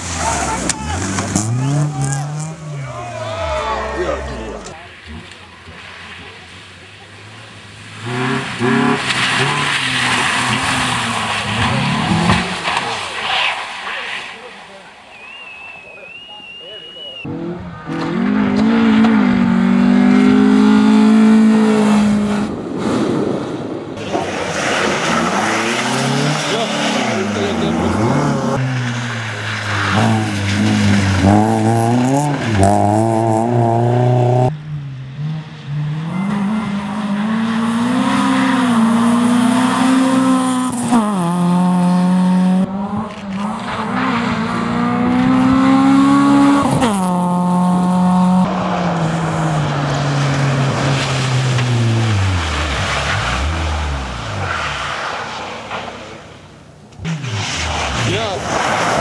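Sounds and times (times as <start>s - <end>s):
rally car engines revving hard: 0.0s - 13.9s, 17.2s - 59.0s.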